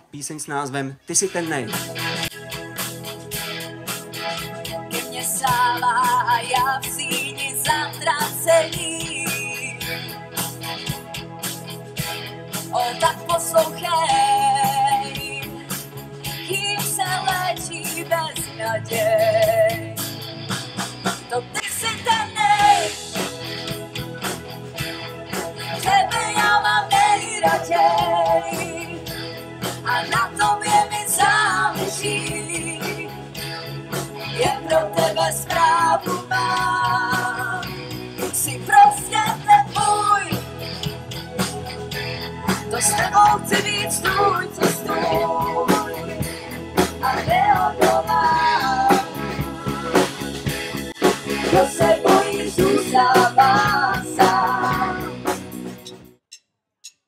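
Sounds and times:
bass guitar: 0.0s - 56.2s
keyboard: 0.0s - 56.2s
live pop-rock band playing: 1.0s - 56.1s
person singing: 12.8s - 15.6s, 21.3s - 23.3s, 34.4s - 37.8s, 42.5s - 50.1s, 51.0s - 55.3s.

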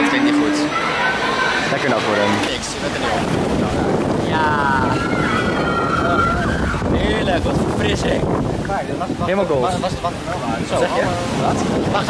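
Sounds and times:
water rushing and churning: 0.0s - 12.0s
wind buffeting microphone: 0.0s - 12.0s.

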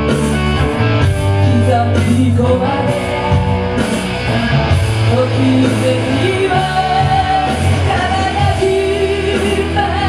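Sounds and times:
electric guitar: 0.0s - 10.0s
rock band accompaniment: 0.0s - 10.0s.

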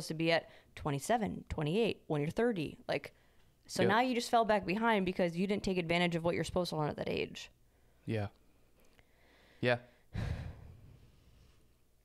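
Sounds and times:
breathy exhale: 10.2s - 11.6s.

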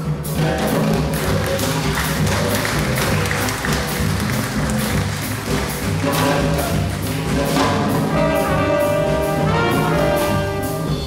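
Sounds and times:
drum kit beat: 0.0s - 11.0s
horn section playing: 0.0s - 11.0s
piano: 0.0s - 11.0s
upright bass: 0.0s - 11.0s.

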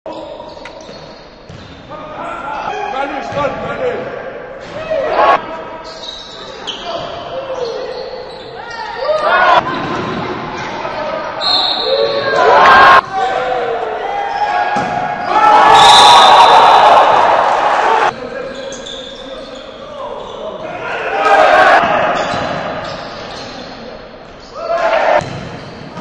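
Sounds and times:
sneakers squeaking: 0.1s - 3.8s, 4.6s - 13.3s, 14.2s - 16.4s, 18.1s - 26.0s
voices of players and spectators: 0.1s - 26.0s
basketball bouncing on court: 0.8s - 1.8s, 9.7s - 10.6s, 21.8s - 23.0s, 25.2s - 26.0s.

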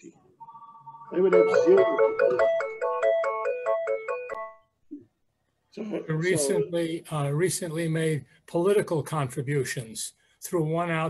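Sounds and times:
phone ringtone plucked melody: 0.5s - 4.7s.

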